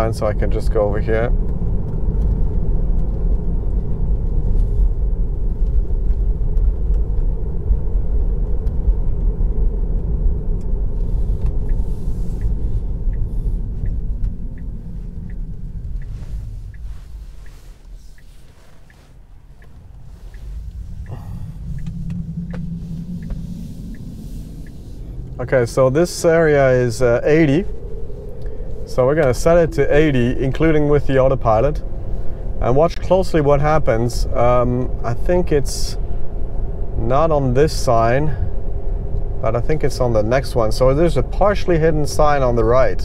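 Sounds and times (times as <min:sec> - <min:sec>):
road and tyre rumble in car: 0:00.0 - 0:43.0
light regular tick: 0:00.4 - 0:30.0.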